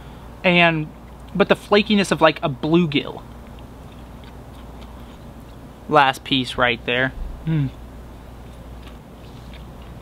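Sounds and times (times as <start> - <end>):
steady low hum: 0.0 - 10.0
faint chewing: 3.2 - 5.7, 8.3 - 10.0.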